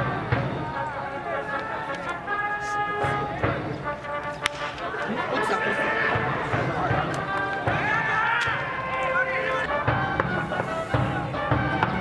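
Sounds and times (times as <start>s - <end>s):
brass band music: 0.0s - 12.0s
crowd shouting and chanting: 0.0s - 12.0s.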